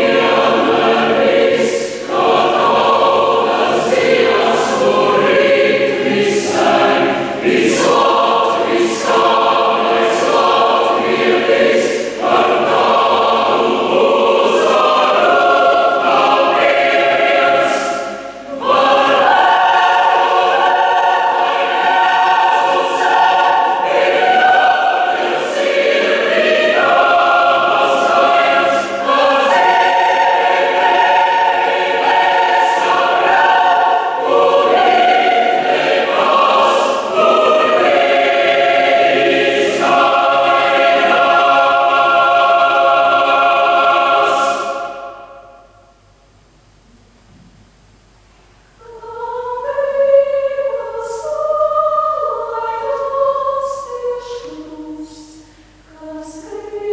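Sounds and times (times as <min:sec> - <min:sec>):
mixed choir singing: 0:00.0 - 0:45.9, 0:48.8 - 0:56.9.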